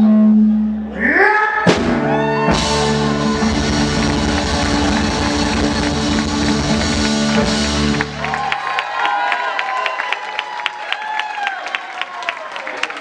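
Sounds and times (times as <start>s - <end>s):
live rock band chord: 1.7s - 8.2s
audience applauding: 2.2s - 13.0s.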